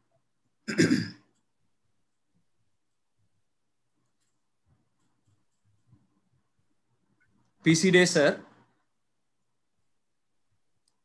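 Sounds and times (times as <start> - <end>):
man clearing throat: 0.6 - 1.3.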